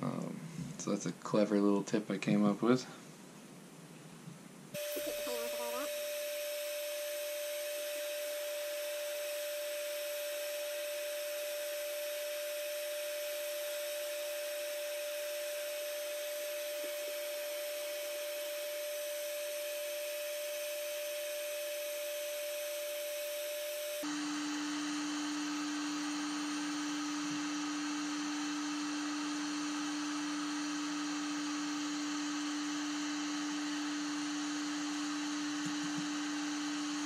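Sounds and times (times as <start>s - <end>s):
heat gun running: 4.8s - 37.0s.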